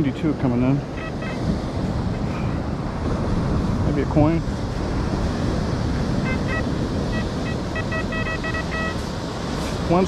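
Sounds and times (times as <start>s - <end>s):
surf: 0.0s - 10.0s
wind noise: 0.0s - 10.0s
metal detector beeping: 1.0s - 1.4s, 6.2s - 9.1s.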